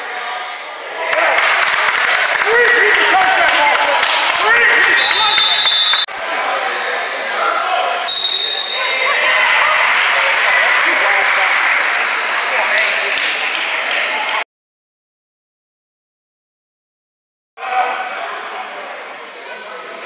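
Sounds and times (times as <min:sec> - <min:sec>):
crowd chatter: 0:00.0 - 0:14.4, 0:17.6 - 0:20.0
referee whistle blasts: 0:04.9 - 0:06.1, 0:08.1 - 0:09.1
sneakers squeaking: 0:06.8 - 0:09.2, 0:19.1 - 0:20.0.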